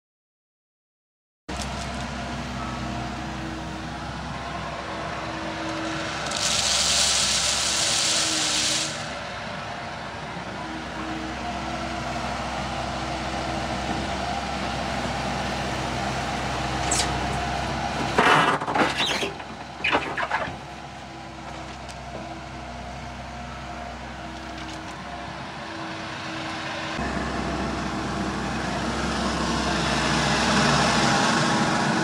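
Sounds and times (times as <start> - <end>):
excavator diesel engine running: 1.5 - 32.0
loud hiss: 6.2 - 9.2.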